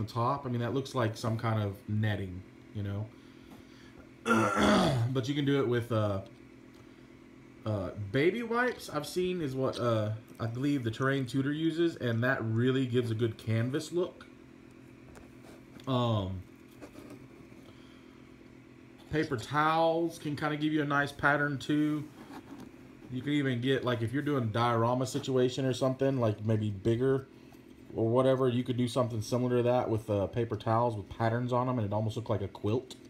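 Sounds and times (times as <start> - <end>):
faint low room hum: 0.0 - 33.0
man clearing his throat: 4.2 - 5.2.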